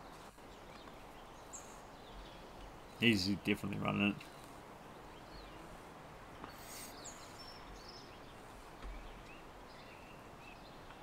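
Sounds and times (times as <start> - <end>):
faint outdoor background noise: 0.0 - 11.0
soft bird chirps: 0.0 - 11.0.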